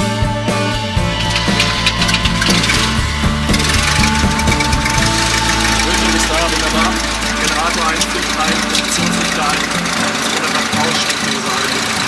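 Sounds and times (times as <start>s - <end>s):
background music: 0.0s - 12.0s
propeller aircraft engine running: 0.8s - 12.0s.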